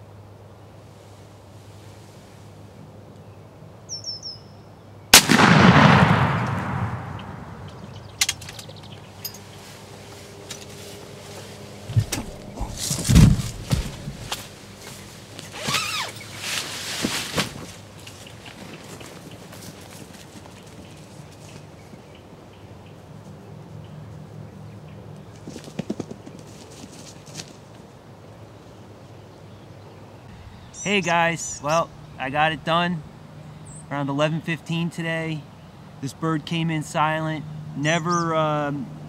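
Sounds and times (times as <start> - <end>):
footsteps through grass: 9.0 - 22.2
turkey wings beating on ground: 11.9 - 15.6, 16.2 - 22.0, 25.3 - 27.7.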